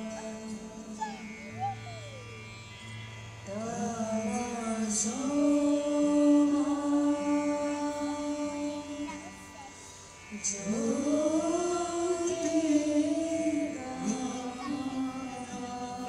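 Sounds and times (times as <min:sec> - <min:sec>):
person singing long held notes: 0:00.0 - 0:02.5, 0:03.4 - 0:16.0.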